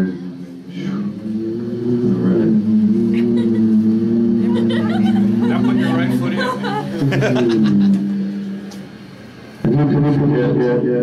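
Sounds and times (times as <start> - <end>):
low electronic drone: 0.0 - 11.0.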